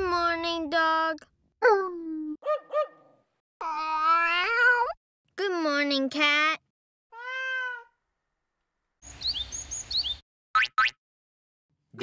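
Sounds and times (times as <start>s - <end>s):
cartoon dog yelping and barking: 2.4s - 5.0s
cat meow: 3.6s - 5.0s, 7.1s - 8.0s.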